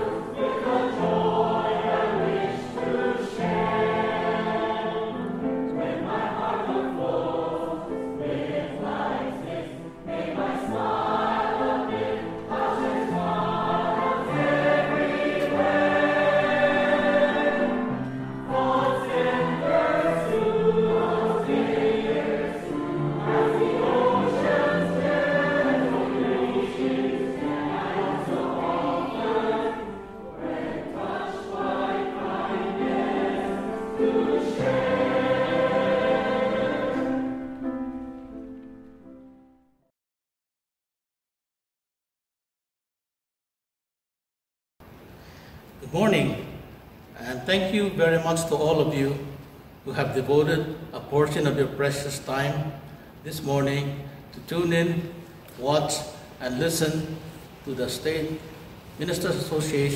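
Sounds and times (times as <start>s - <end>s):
choir singing: 0.0s - 38.0s.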